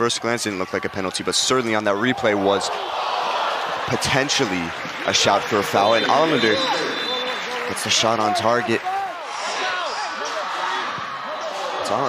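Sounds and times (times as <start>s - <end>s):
crowd noise: 0.0s - 12.0s
voices shouting and calling: 2.0s - 12.0s.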